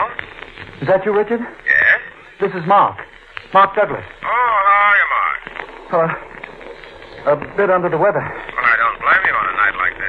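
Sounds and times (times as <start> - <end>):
man talking: 7.2 - 10.0.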